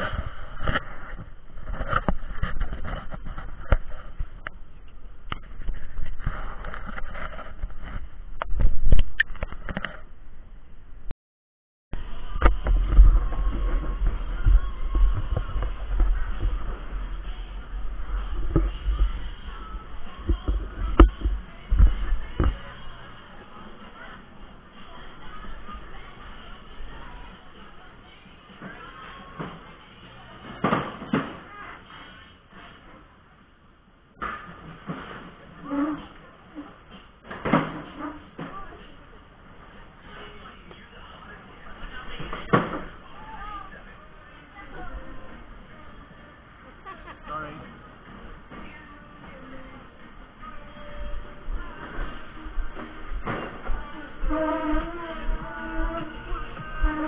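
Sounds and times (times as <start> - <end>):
heavy low rumble: 12.0 - 27.8
faint voices: 12.0 - 33.5, 37.8 - 57.0
footsteps on walkway: 51.5 - 57.0.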